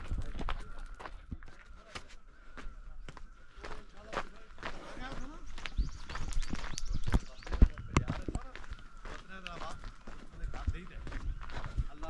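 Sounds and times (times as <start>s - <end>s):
footsteps crunching on gravel: 0.0s - 12.0s
voices talking: 0.0s - 12.0s.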